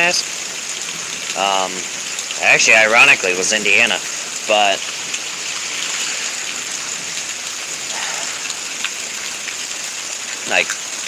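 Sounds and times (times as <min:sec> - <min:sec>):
steady rain hiss: 0:00.0 - 0:11.0.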